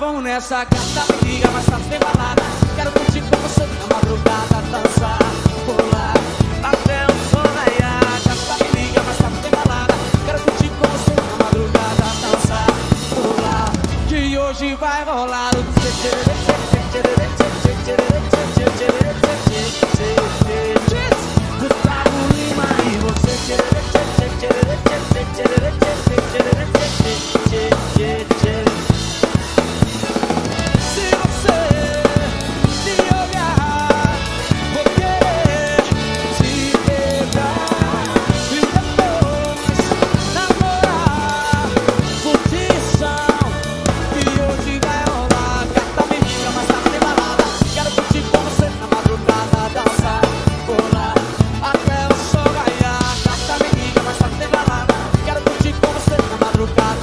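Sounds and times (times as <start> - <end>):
recorded song track: 0.0 - 57.0
drum kit playing a driving beat: 0.7 - 14.6, 15.2 - 57.0.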